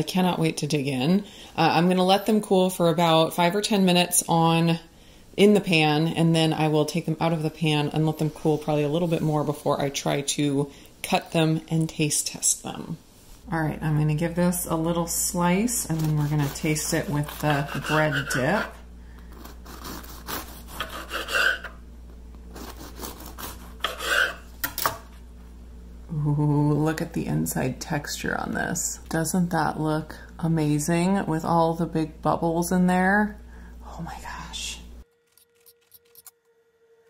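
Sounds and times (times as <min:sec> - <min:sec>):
faint steady hum: 0:00.0 - 0:37.0
bread knife sawing crust: 0:15.8 - 0:18.8, 0:19.4 - 0:21.8, 0:22.5 - 0:24.5.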